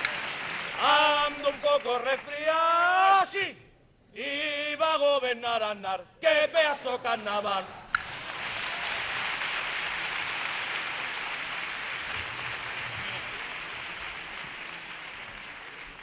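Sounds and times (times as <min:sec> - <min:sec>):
audience applauding: 0:00.0 - 0:02.5, 0:08.0 - 0:16.0.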